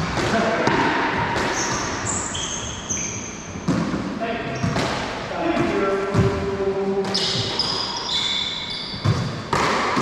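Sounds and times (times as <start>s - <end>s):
sneaker squeaks on hardwood floor: 1.4s - 5.0s, 7.1s - 9.6s.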